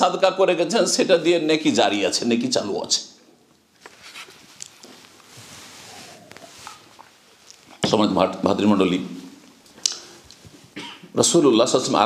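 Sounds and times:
person coughing: 10.8s - 11.2s.

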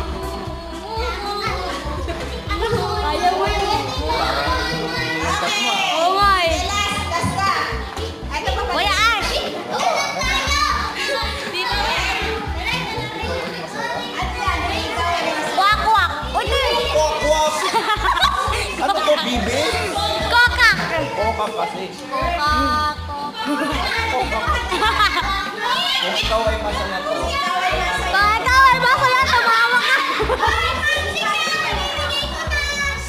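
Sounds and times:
music with steady beat: 0.0s - 5.4s, 15.8s - 21.2s, 22.3s - 29.5s
children chattering and calling out: 0.0s - 33.0s.

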